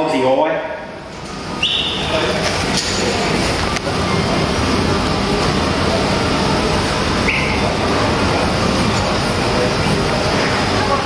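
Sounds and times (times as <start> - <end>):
loud rumbling noise: 0.6 - 11.0.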